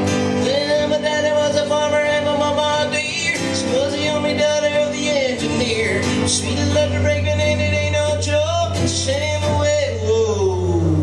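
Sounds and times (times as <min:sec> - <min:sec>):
acoustic guitar: 0:00.0 - 0:11.0
man singing: 0:00.0 - 0:11.0.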